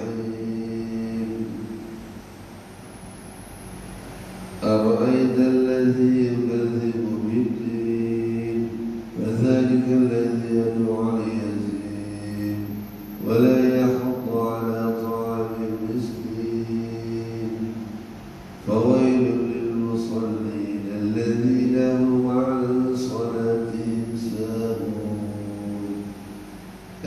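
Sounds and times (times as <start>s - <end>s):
man chanting a recitation: 0.0s - 2.1s, 4.6s - 26.4s.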